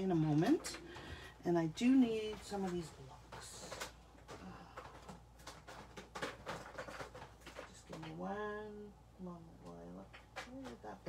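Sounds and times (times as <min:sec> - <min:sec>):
stamping supplies clicking and knocking: 0:01.8 - 0:08.4, 0:09.7 - 0:11.0.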